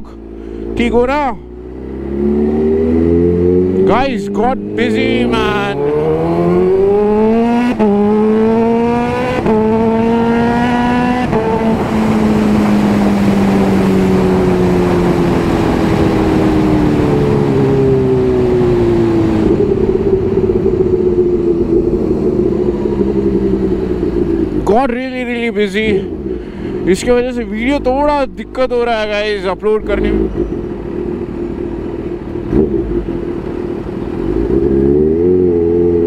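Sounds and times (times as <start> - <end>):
motorcycle engine accelerating: 0.0 - 36.0
rushing wind: 0.0 - 36.0.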